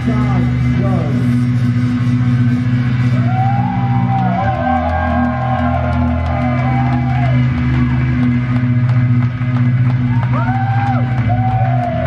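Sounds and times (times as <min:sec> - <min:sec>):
rapid bass notes: 0:00.0 - 0:12.0.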